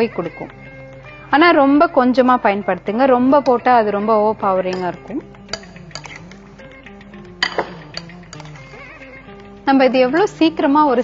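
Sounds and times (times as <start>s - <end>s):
soft background music: 0.0s - 11.0s
metal spoon clinking on bowl: 4.7s - 6.4s, 7.4s - 8.7s.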